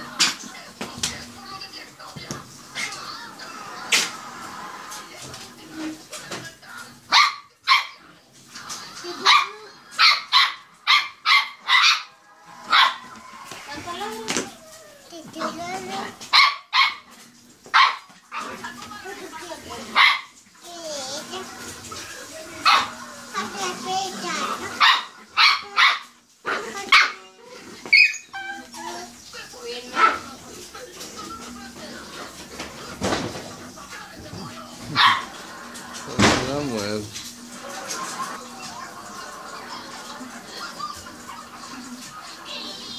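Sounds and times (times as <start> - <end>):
small dog barking: 7.1 - 8.0, 9.2 - 13.1, 16.3 - 17.1, 17.7 - 18.6, 19.9 - 20.3, 22.6 - 22.9, 24.8 - 27.2, 29.9 - 30.3, 34.9 - 35.4
young child's voice: 13.7 - 16.2, 20.6 - 21.7, 23.3 - 24.8.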